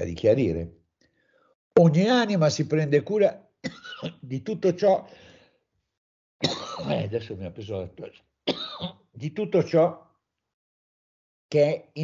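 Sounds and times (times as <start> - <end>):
man clearing his throat: 6.4 - 7.2.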